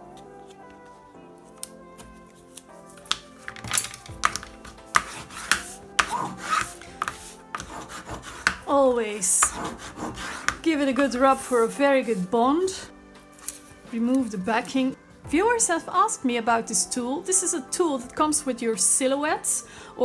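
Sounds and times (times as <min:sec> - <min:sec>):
soft background music: 0:00.0 - 0:20.0
bone folder scraping paper: 0:04.2 - 0:08.7, 0:09.4 - 0:12.2.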